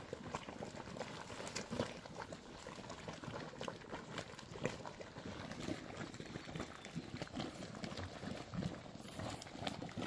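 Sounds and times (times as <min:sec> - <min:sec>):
mud pool bubbling and popping: 0:00.0 - 0:10.0.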